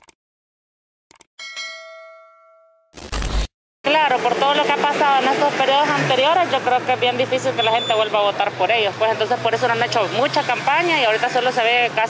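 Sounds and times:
notification bell ding: 1.4 - 2.9.

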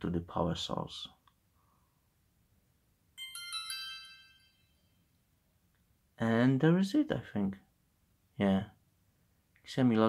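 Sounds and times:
electronic startup chime: 3.2 - 5.0.

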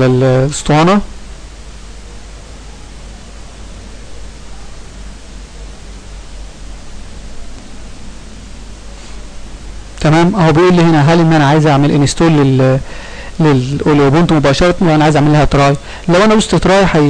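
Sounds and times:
low hum: 0.0 - 17.0
microphone hiss: 0.0 - 17.0.

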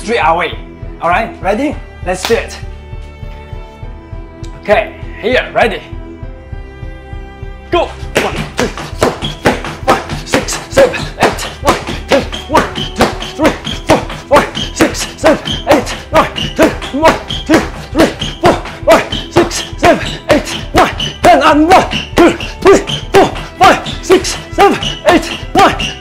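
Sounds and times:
background music: 0.0 - 26.0
hand slaps on feet: 2.2 - 2.5.

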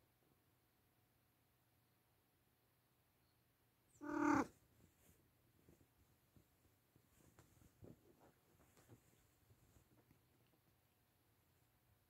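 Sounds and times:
cat meowing: 4.0 - 4.5.

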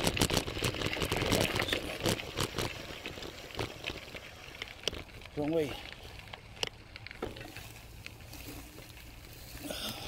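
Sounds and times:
bike clicks and rattles: 0.0 - 10.0
bike riding rumble: 0.0 - 10.0.

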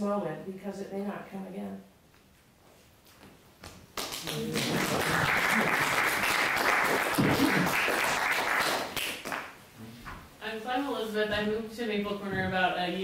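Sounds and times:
audience applauding: 4.0 - 9.6.

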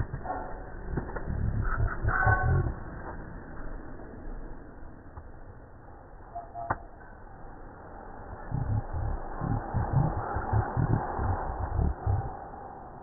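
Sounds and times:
wind buffeting microphone: 8.5 - 13.0.

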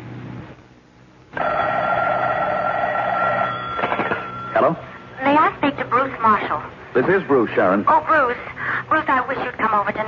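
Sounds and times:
telephone bell ringing: 1.4 - 5.2.

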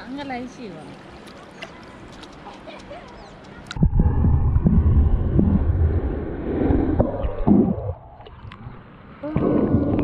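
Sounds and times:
muffled underwater sloshing rumble: 3.8 - 10.0.

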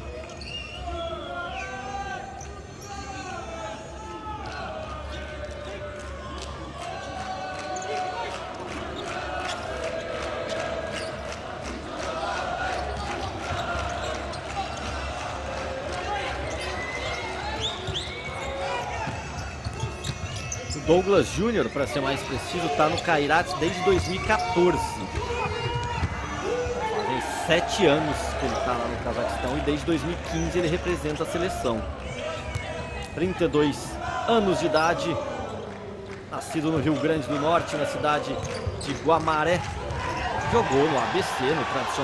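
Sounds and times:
players shouting: 0.9 - 35.6, 36.7 - 42.0
ball bouncing on hard court: 19.0 - 20.8.

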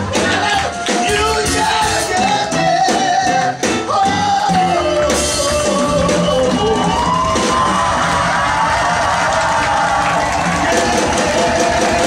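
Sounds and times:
upbeat band music: 0.0 - 12.0.

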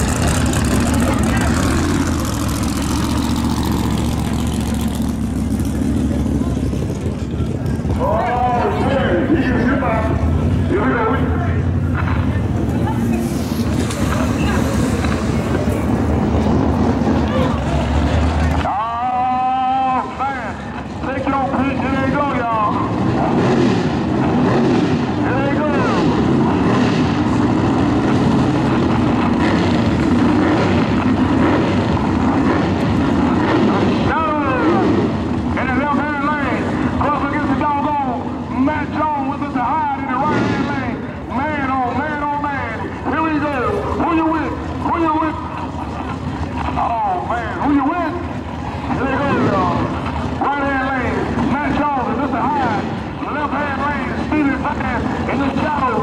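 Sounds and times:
people talking: 0.0 - 2.3, 6.0 - 16.1, 17.2 - 23.4, 25.2 - 26.1, 33.7 - 56.0
steady engine idling: 0.0 - 23.3, 25.1 - 56.0
car engine at high revs: 0.0 - 56.0.

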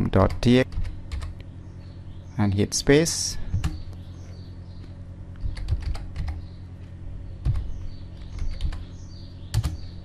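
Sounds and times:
computer keyboard typing: 0.2 - 1.4, 3.5 - 3.8, 5.4 - 6.4, 7.4 - 8.8, 9.5 - 9.8.

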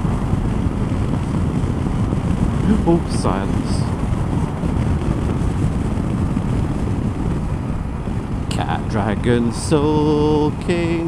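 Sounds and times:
motorcycle engine: 0.0 - 11.0
road noise: 0.0 - 11.0
wind rushing on microphone: 0.0 - 11.0
person speaking: 2.6 - 3.9, 8.5 - 11.0.

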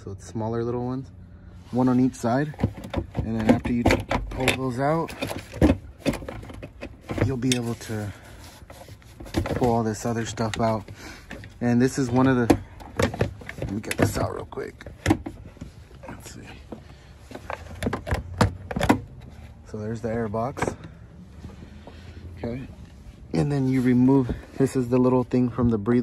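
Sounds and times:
plastic scraping against metal frame: 1.7 - 26.0.

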